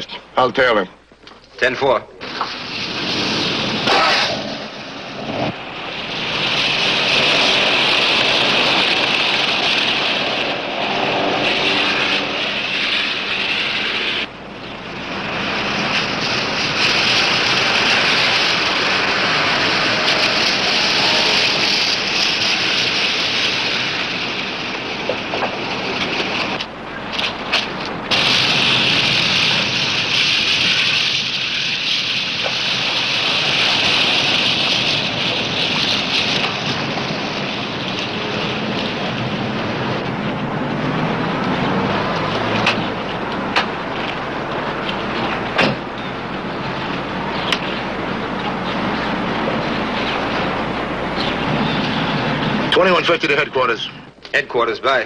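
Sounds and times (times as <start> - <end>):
cars driving by: 2.2 - 54.1.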